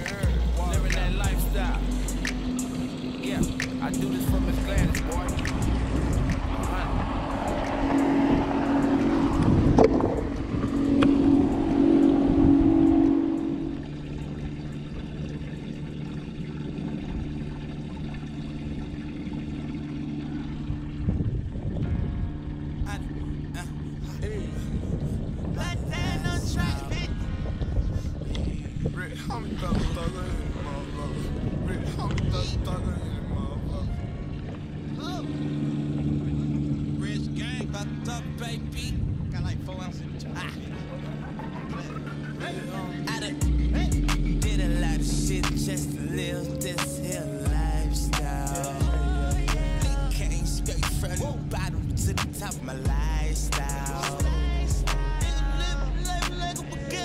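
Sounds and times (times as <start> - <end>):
sharp clicks: 0.0 - 1.5, 2.1 - 2.8, 4.9 - 8.0
indistinct voices: 0.0 - 17.3, 22.8 - 57.0
boat motor running: 0.0 - 57.0.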